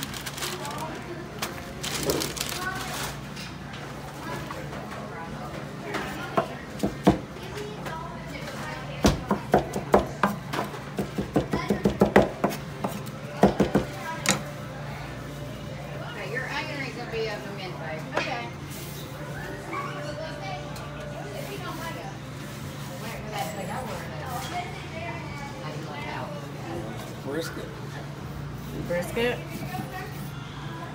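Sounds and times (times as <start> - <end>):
restaurant chatter: 0.0 - 30.9.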